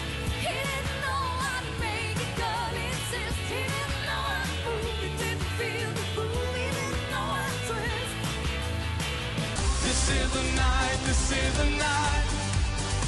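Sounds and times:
upbeat pop song with singing: 0.0 - 13.0.

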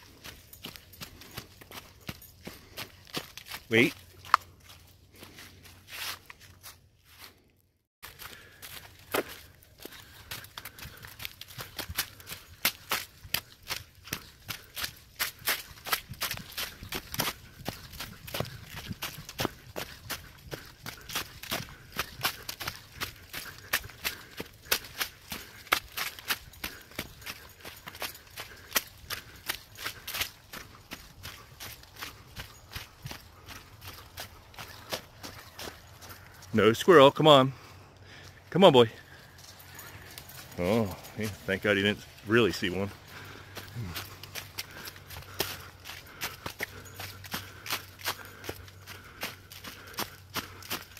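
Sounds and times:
footsteps crunching dry leaves: 0.0 - 50.9.

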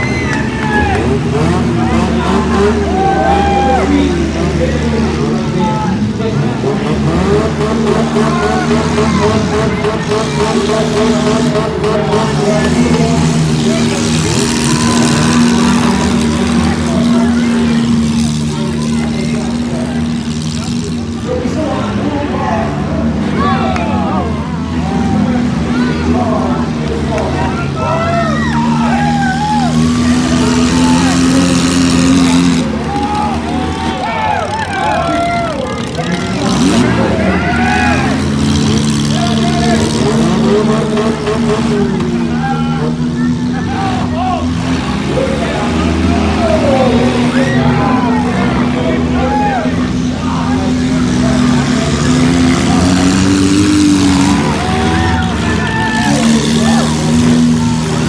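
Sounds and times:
car engines revving: 0.0 - 58.0
voices shouting and talking: 0.0 - 58.0.

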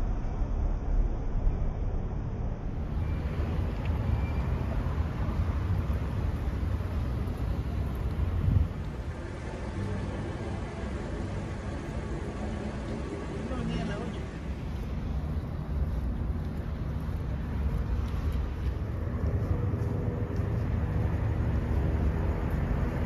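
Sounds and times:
street traffic rumble: 0.0 - 23.0
vehicle engines idling: 2.7 - 23.0.

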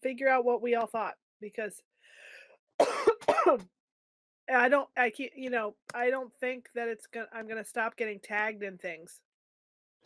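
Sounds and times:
faint breath: 2.0 - 2.6
woman clearing her throat: 2.8 - 3.7.

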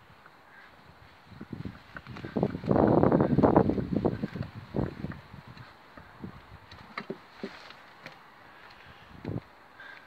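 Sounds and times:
soft steady hiss: 0.0 - 10.0.

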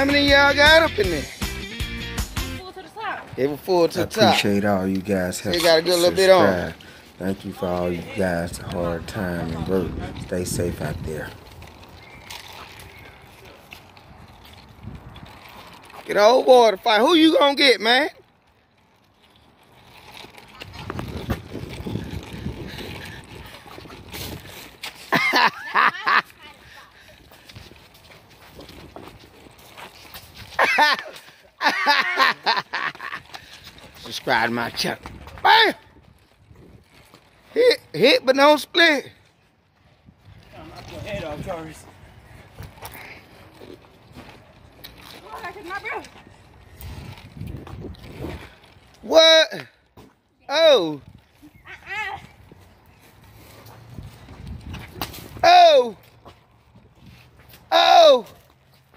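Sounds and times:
wind buffeting microphone: 6.5 - 15.9, 20.3 - 24.9, 33.3 - 37.4, 39.7 - 48.9, 51.0 - 55.4
children calling and shouting: 22.8 - 27.6, 50.4 - 52.7.

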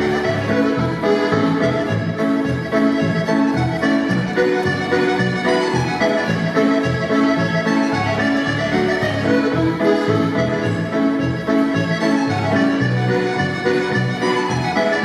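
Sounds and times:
accordion dance music: 0.0 - 15.0.

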